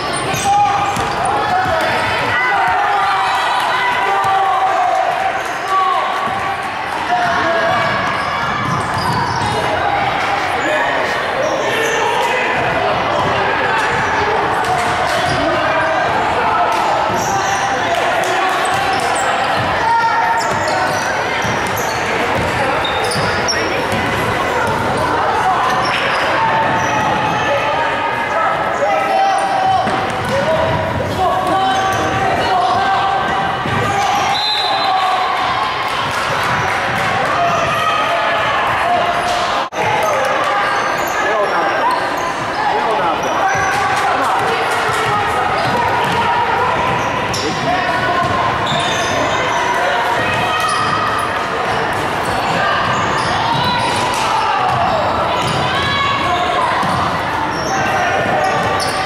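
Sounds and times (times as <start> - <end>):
people shouting and calling: 0.0 - 59.0.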